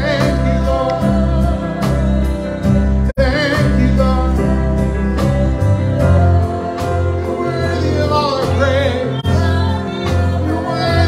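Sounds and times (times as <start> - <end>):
sustained bass notes: 0.0 - 11.0
worship band playing: 0.0 - 11.0.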